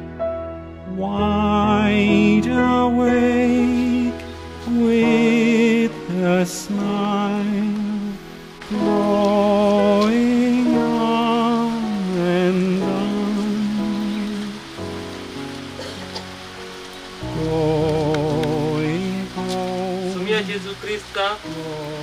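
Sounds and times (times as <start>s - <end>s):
rain falling: 0.0s - 22.0s
person singing with vibrato: 0.9s - 14.8s, 17.2s - 20.7s, 21.3s - 22.0s.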